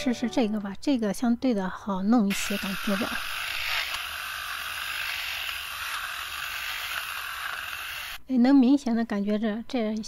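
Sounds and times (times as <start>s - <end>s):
lint remover whirring: 2.3s - 8.2s.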